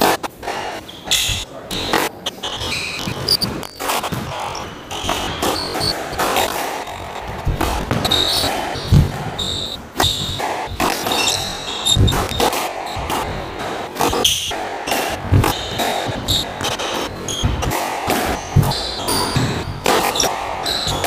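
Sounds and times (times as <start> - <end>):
squash ball hitting rackets and walls: 0.0 - 21.0
shoes squeaking on wooden floor: 0.8 - 21.0.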